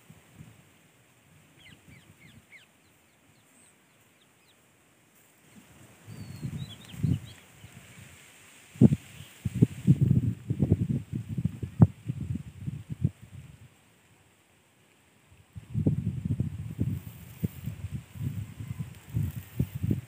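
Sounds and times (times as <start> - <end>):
small birds chirping: 1.5 - 4.7, 5.4 - 8.2.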